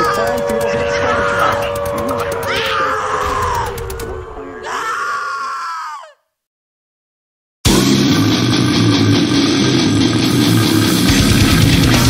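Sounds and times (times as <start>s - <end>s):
distorted electric guitars: 0.0s - 4.1s, 7.7s - 12.0s
death metal music: 0.0s - 5.2s, 7.7s - 12.0s
bass guitar: 7.7s - 12.0s.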